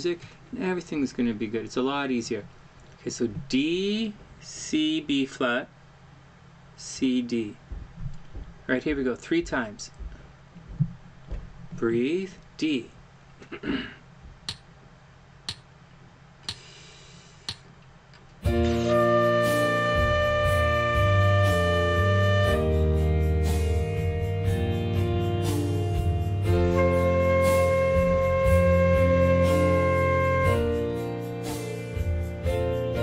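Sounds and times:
piano backing track: 18.4s - 33.0s
flute long held notes: 18.6s - 23.0s, 26.4s - 30.9s.

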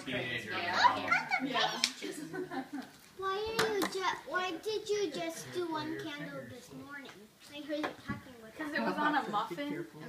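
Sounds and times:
people talking: 3.2s - 10.0s.

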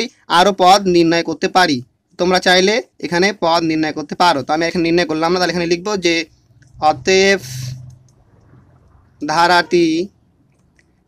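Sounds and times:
man talking: 0.0s - 7.8s, 9.2s - 10.1s.

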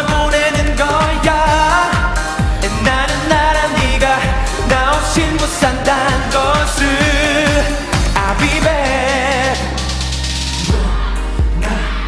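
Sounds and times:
male voices singing: 0.0s - 12.0s
deep bass drum hits: 0.1s - 9.0s.

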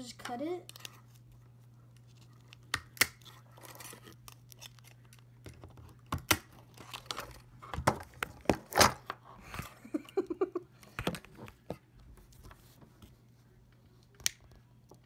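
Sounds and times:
low steady hum: 0.0s - 15.0s
snipping and tearing speaker wiring: 2.4s - 5.2s.

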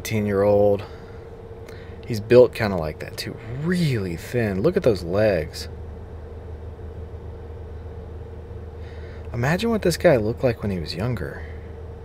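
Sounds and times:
car cabin hum: 0.0s - 12.0s
faint steady tone: 0.0s - 12.0s.

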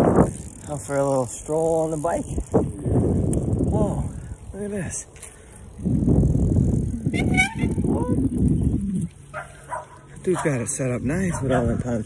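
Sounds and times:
wind rumbling on microphone: 0.0s - 9.8s, 10.8s - 12.0s.

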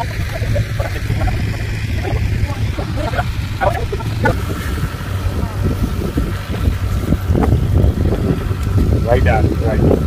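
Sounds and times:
voices: 0.0s - 10.0s
wind buffeting microphone: 0.0s - 10.0s.

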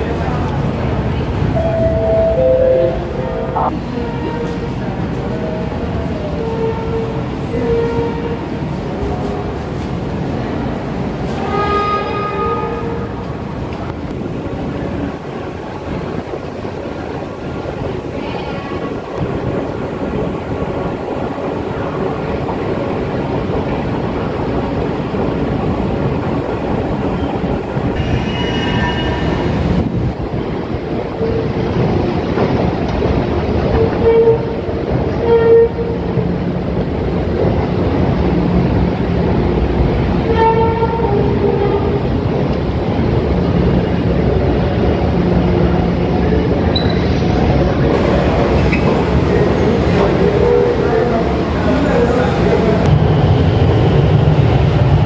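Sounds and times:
metro train rumble: 0.0s - 55.0s
pitched train whines: 1.1s - 8.8s, 26.7s - 38.0s, 38.6s - 55.0s.

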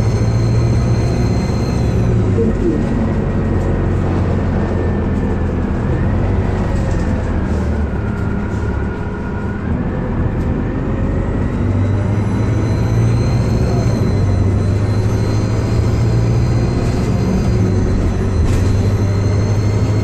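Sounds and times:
transmission whine: 0.0s - 4.9s
bus engine drone: 0.0s - 20.0s.

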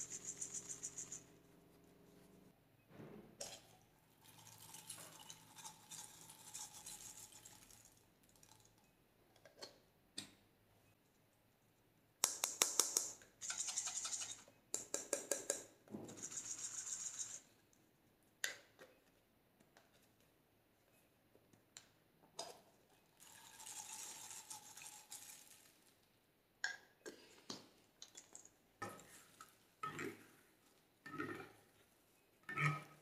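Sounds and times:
beads rattling against plastic: 23.2s - 26.0s.

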